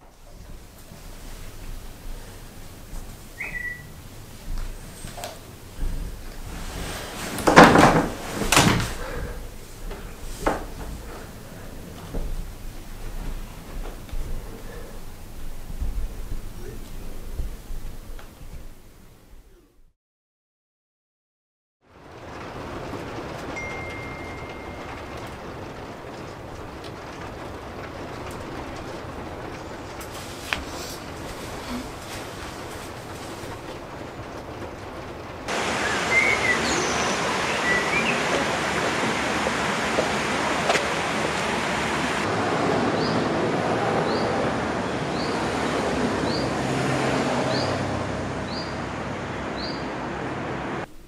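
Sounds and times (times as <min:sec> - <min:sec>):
steady rumbling: 0:00.0 - 0:19.6, 0:21.9 - 0:51.0
thin high tone: 0:23.6 - 0:25.3.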